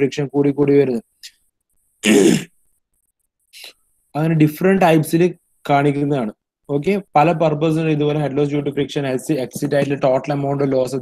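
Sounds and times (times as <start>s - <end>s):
person clearing throat: 2.0s - 2.5s.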